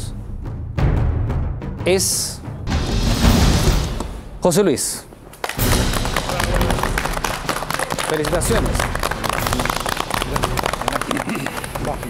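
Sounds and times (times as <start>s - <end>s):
people applauding: 5.3s - 12.0s.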